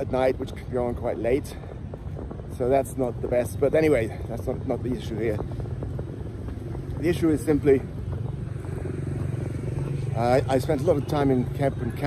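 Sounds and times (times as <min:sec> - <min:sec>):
vehicle engine running: 0:03.4 - 0:12.0.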